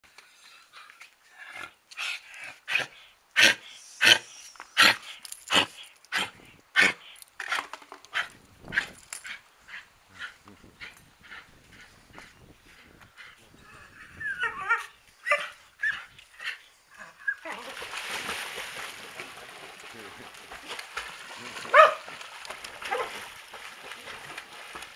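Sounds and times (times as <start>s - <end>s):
dog splashing into water: 17.5s - 24.9s
dog barking: 21.7s - 22.0s, 22.9s - 23.1s.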